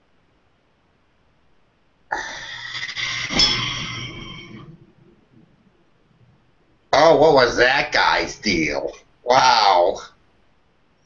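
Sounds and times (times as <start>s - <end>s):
person breathing heavily: 2.1s - 4.3s.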